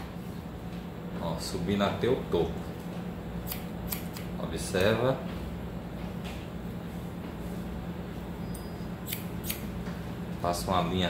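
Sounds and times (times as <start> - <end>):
scissors snipping hair: 3.4 - 4.9, 8.6 - 9.7.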